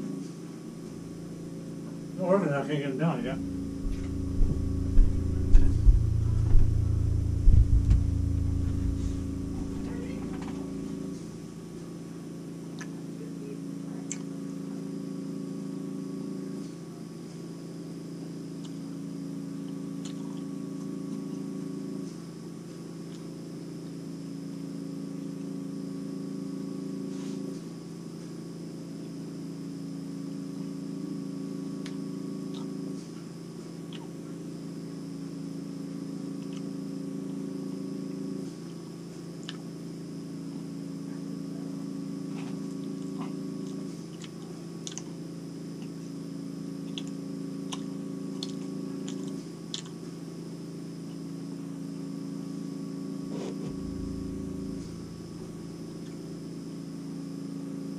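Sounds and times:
two-tone machine hum: 0.0 - 57.9.

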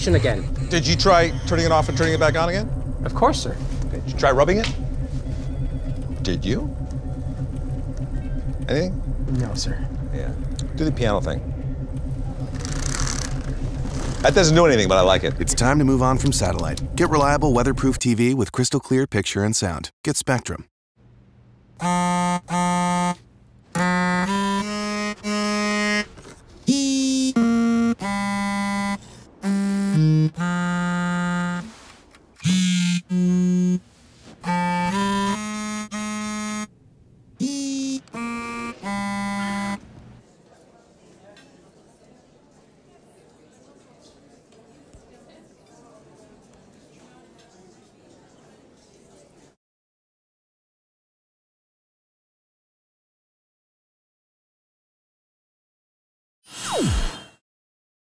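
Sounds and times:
low pulsing machine hum: 0.0 - 18.0, 32.5 - 40.2
electronic phone alert tones: 32.4 - 33.8, 34.4 - 36.7, 37.4 - 39.8.

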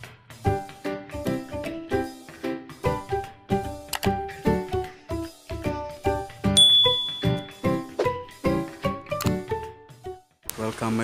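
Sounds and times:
background music with steady beat: 0.0 - 11.0
bright bell-like ding: 6.6 - 7.6.

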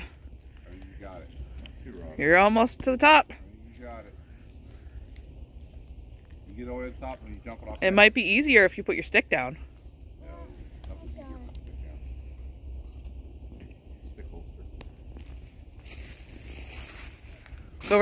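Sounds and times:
distant children's voices: 10.2 - 12.1
rustling hiss: 14.2 - 18.0.

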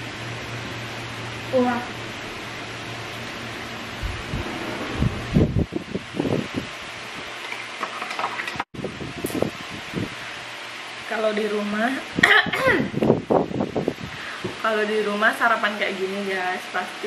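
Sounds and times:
fan-like room hiss: 0.0 - 17.0.

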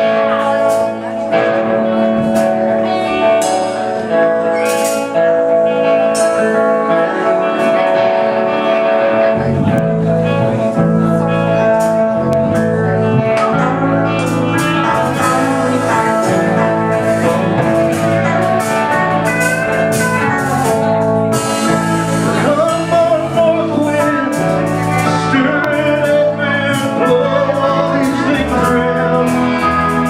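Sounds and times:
bass: 0.0 - 30.0
drums: 0.0 - 30.0
electric guitar: 0.0 - 30.0
pedal steel guitar: 0.0 - 30.0.

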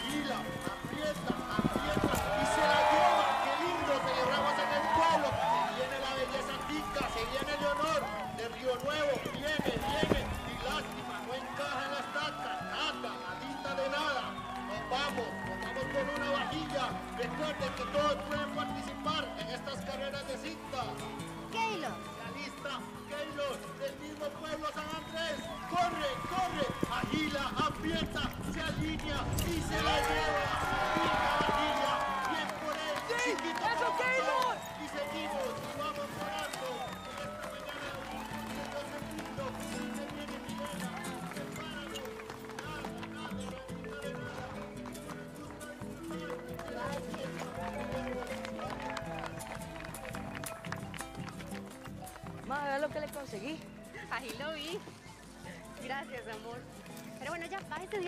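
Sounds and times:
crowd shouting and cheering: 0.0 - 52.6.

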